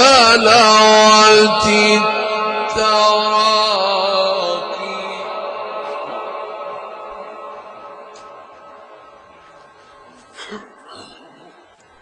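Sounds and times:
man reciting melodically: 0:00.0 - 0:08.8.

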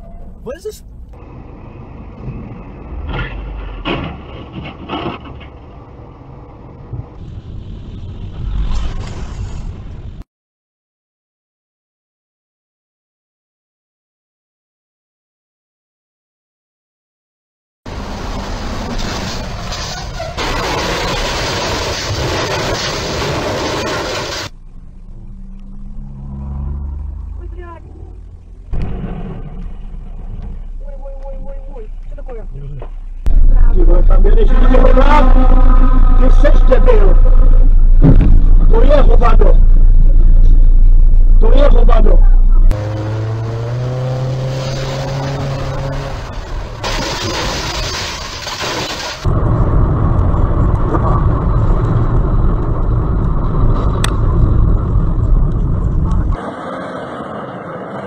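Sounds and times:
road and engine noise: 0:00.0 - 0:10.2, 0:17.9 - 0:58.0
truck crashing onto its side: 0:03.0 - 0:05.7, 0:38.0 - 0:38.6
loud rushing noise: 0:33.2 - 0:47.9
loud knocks and clatter: 0:37.9 - 0:38.7.

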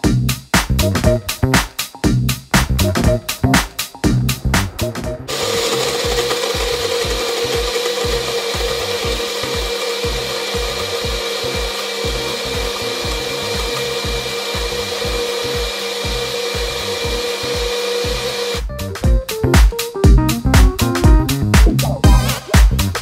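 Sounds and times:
blender running at high speed: 0:05.3 - 0:18.7.

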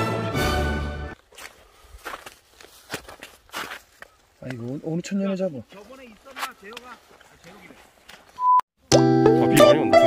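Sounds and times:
footsteps on snowy ice: 0:01.1 - 0:08.4.

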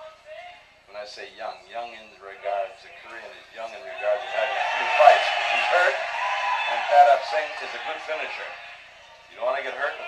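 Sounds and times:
voices through television speaker: 0:00.0 - 0:10.0.

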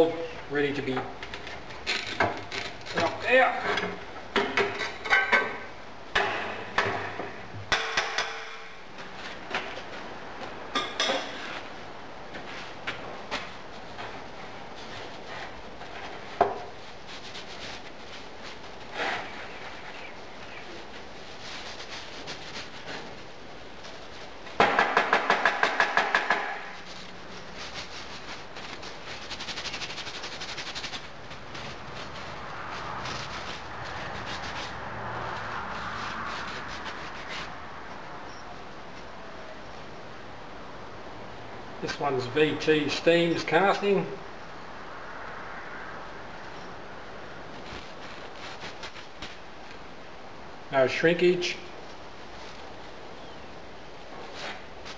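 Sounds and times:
knocks on metal moulding box: 0:24.6 - 0:26.6
sand crumbling and rubbing: 0:26.6 - 0:37.6.

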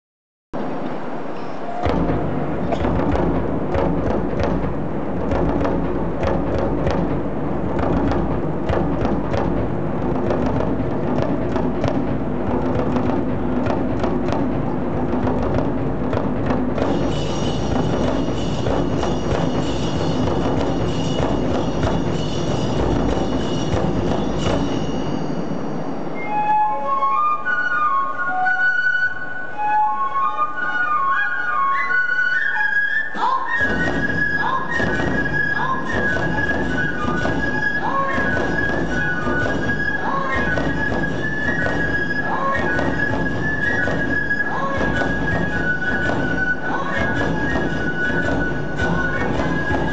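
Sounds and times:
taiko drums beating: 0:00.6 - 0:26.3, 0:33.2 - 0:49.9
bamboo flutes melody: 0:00.6 - 0:49.9.

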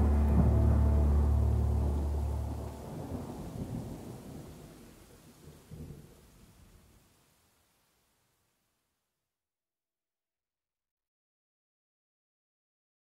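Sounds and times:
low sustained drone: 0:00.0 - 0:03.6
thunder rolls: 0:00.0 - 0:04.8
rain hiss: 0:00.0 - 0:08.8.

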